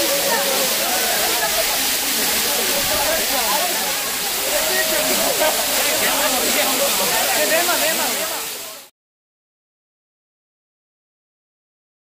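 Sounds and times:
voices: 0.0s - 8.9s
waterfall rushing and splashing: 0.0s - 8.9s.

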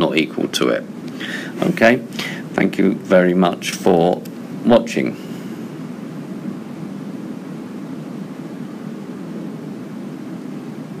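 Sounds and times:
room tone hum-like hiss: 0.0s - 11.0s.

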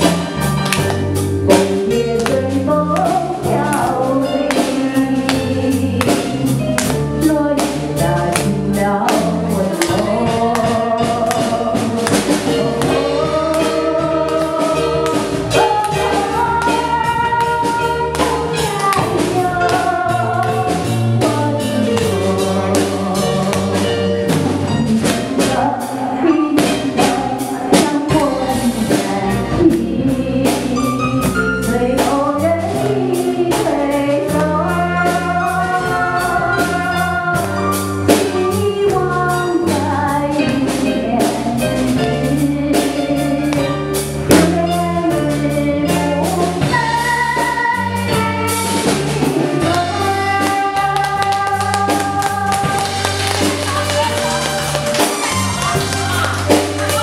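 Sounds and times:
woman singing: 0.0s - 54.7s, 55.6s - 57.0s
drum kit beat: 0.0s - 57.0s
electric bass guitar: 0.0s - 57.0s.

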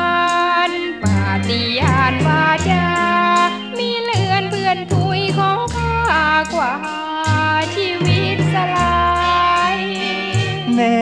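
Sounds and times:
band with bass line: 0.0s - 11.0s
woman singing in a high voice: 0.0s - 11.0s.

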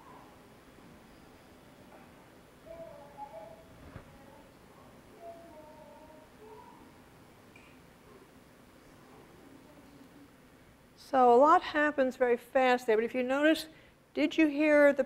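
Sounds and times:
toddler vocalizing over loudspeakers: 2.6s - 7.0s.

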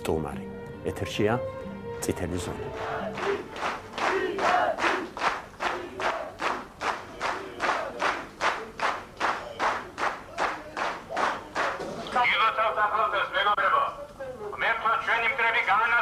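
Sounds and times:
crowd voices: 2.6s - 12.8s
crowd clapping in unison: 2.7s - 11.9s.

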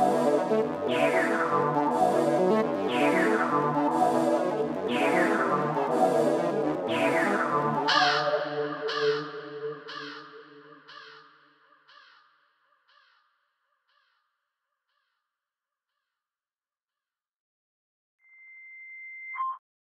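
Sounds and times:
instrumental beat echoing: 0.0s - 11.0s.

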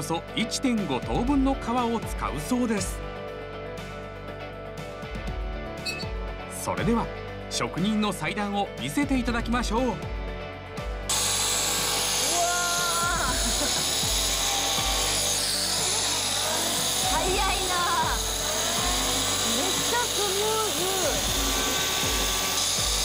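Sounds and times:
electric cutter whirring: 11.1s - 23.0s.

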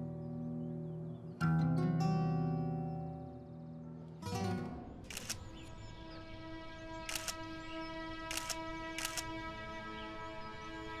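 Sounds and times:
soft background music: 0.0s - 11.0s
camera shutter clicks: 5.1s - 5.6s, 7.0s - 7.5s, 8.2s - 9.4s.

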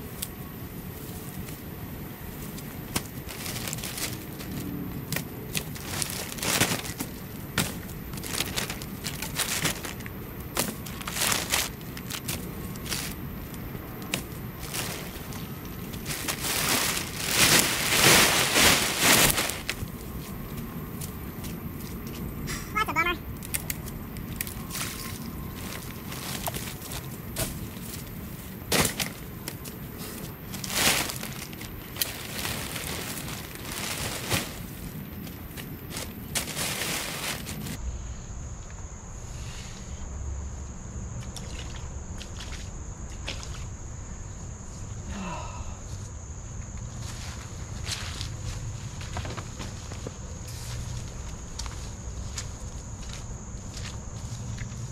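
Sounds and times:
plastic sheeting crinkling: 1.0s - 21.1s, 24.3s - 37.8s
branches knocking and snapping: 2.5s - 13.2s, 23.4s - 37.8s.

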